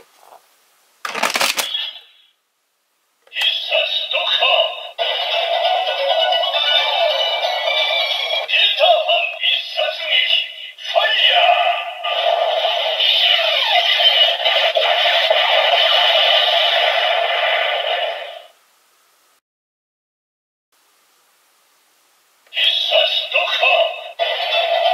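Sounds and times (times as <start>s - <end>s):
toy synthesized voice: 3.3s - 16.4s, 22.5s - 24.9s
toy electronic music: 5.0s - 8.5s, 24.0s - 24.9s.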